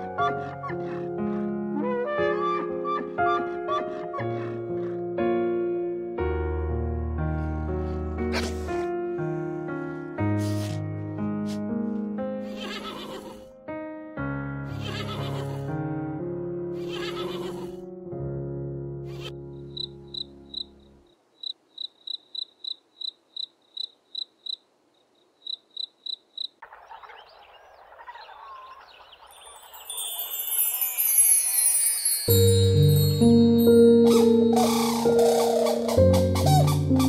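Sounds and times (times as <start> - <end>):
soft instrumental music: 0.0 - 21.0, 29.3 - 37.0
cricket chirping: 19.7 - 26.6
chiming tones: 29.2 - 35.3.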